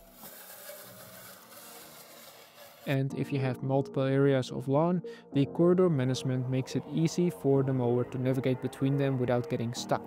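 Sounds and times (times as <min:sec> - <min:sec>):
electric mower hum and hiss: 0:00.0 - 0:03.0.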